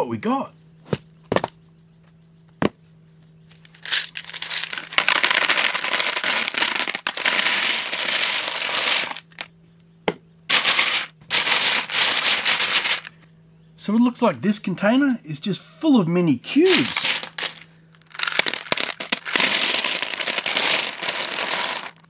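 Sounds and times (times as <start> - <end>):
resin cubes rattling into plastic tub: 3.7 - 9.2, 10.5 - 13.1, 16.7 - 22.0.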